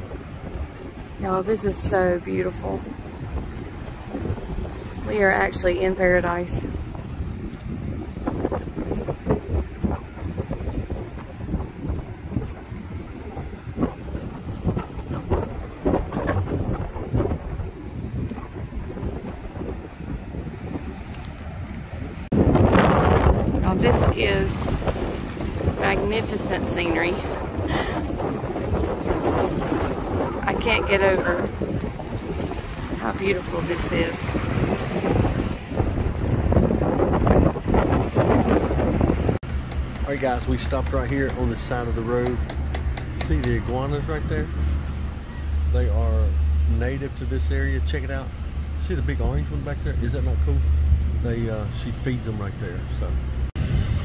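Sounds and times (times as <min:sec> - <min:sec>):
sea surf: 0:00.0 - 0:54.0
strong wind buffeting microphone: 0:00.0 - 0:54.0
indistinct voices: 0:30.4 - 0:31.6.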